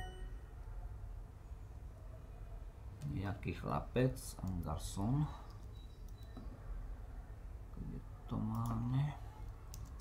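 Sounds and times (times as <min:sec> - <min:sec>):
correct-answer chime: 0:00.0 - 0:00.4
low background hum: 0:00.0 - 0:10.0.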